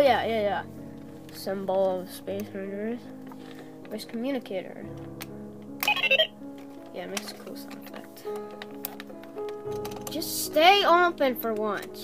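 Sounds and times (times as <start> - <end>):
background music: 0.0 - 12.0
toy electronic beeps and chirps: 5.8 - 6.3.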